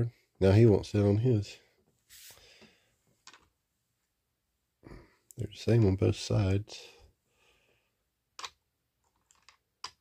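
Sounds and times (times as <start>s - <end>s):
plastic clicks: 8.4s - 10.0s.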